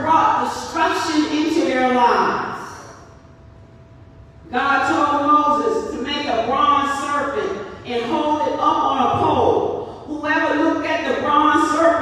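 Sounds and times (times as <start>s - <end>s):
woman speaking into a microphone: 0.0s - 3.1s, 4.4s - 12.0s.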